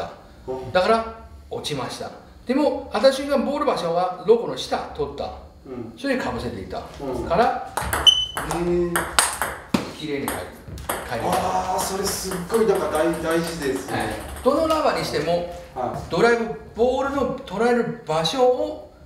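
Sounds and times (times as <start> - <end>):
men talking: 0.0 - 7.8, 8.4 - 9.2, 9.9 - 18.8
table tennis balls clicking: 7.8 - 15.3.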